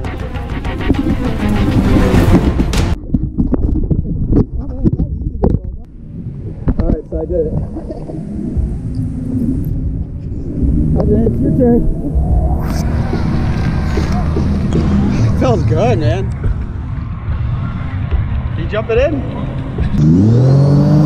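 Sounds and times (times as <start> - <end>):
background music: 0.0 - 3.0, 8.3 - 21.0
low rumble: 0.0 - 20.1.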